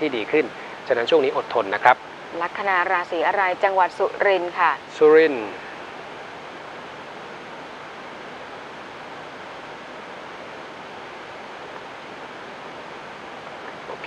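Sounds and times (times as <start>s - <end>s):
steady hiss: 0.0s - 14.0s.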